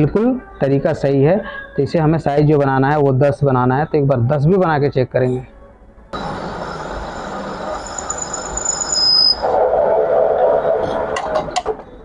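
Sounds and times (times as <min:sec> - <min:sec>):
metal lathe cutting steel: 0:06.2 - 0:09.5
high-pitched cutting squeal: 0:06.2 - 0:09.6.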